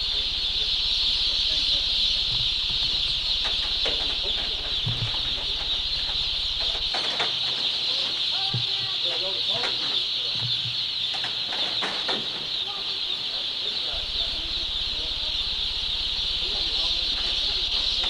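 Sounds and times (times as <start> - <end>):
low hum: 0.0 - 8.9, 12.5 - 18.0
chicks peeping chorus: 0.0 - 18.0.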